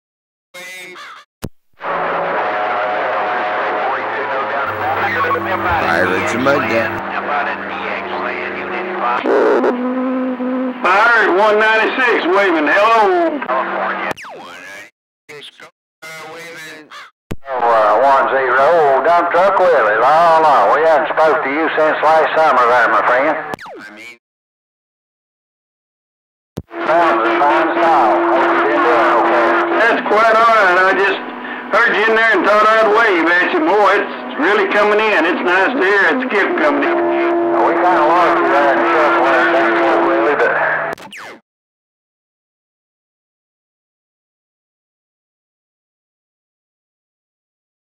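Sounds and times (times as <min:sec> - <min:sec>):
voices over cb radio: 0:04.3 - 0:07.0
man's voice over radio: 0:04.3 - 0:09.2, 0:26.8 - 0:40.8
warbling radio voice: 0:04.7 - 0:07.0.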